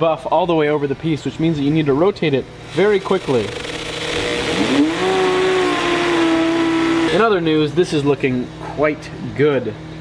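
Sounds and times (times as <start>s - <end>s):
motor hum: 1.8s - 8.7s.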